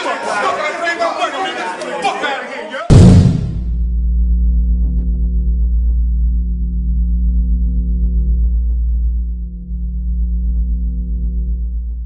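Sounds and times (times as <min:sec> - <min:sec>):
low synth bass drone: 0:02.9 - 0:12.0.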